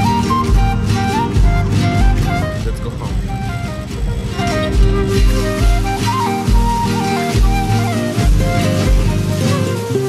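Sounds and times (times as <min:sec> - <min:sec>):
melody over bass beat: 0:00.0 - 0:10.0.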